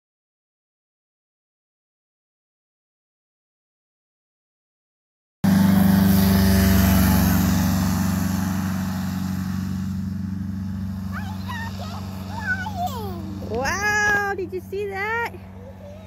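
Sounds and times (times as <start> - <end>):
paramotor engine and propeller drone: 5.4 - 16.0.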